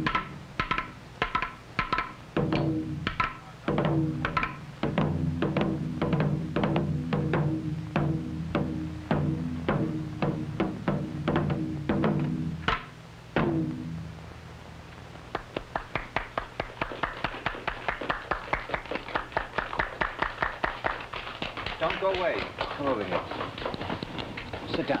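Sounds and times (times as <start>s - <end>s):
quick sharp drum taps: 0.0s - 5.1s, 15.3s - 25.0s
barrel drums struck deeply: 0.0s - 14.1s.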